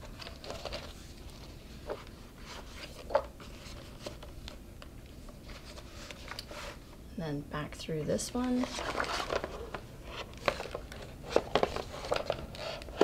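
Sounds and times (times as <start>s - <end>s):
paper handling: 0.0s - 6.8s, 8.4s - 13.0s.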